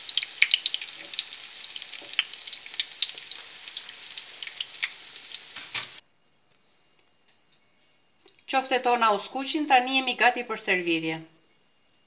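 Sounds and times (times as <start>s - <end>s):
patties sizzling in oil: 0.0s - 6.0s.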